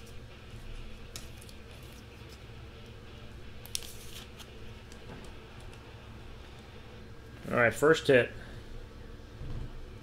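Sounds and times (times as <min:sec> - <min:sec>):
trading cards rustling and clicking: 0:00.0 - 0:03.0, 0:03.6 - 0:05.9
low steady hum: 0:00.0 - 0:10.0.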